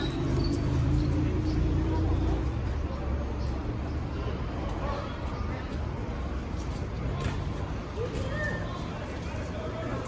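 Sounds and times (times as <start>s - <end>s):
shoe squeaks on court: 0.0s - 1.2s.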